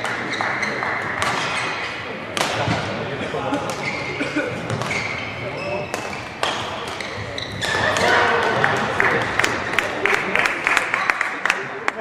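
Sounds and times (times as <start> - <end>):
racket striking shuttlecock: 0.0 - 2.8, 5.9 - 9.4
shoes squeaking on court floor: 0.0 - 3.0, 3.6 - 8.6
voices in a hall: 0.0 - 12.0.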